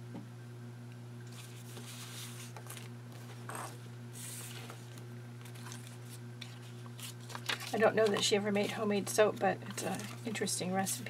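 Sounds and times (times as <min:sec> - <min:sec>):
steady low hum: 0:00.0 - 0:11.0
paper rustling and handling: 0:01.3 - 0:11.0
woman speaking: 0:07.7 - 0:11.0.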